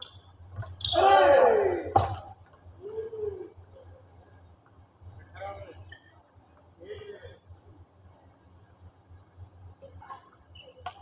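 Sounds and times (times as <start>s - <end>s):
players shouting: 0.9s - 2.0s.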